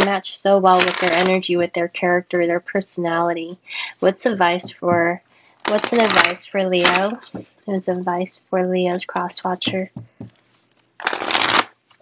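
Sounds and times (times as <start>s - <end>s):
cards being shuffled: 0.8s - 1.3s, 5.7s - 7.5s, 10.2s - 12.0s.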